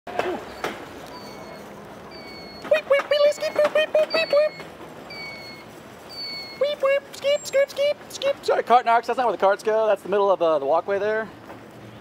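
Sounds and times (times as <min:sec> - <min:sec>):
electronic siren chirps and beep: 0:00.5 - 0:06.7.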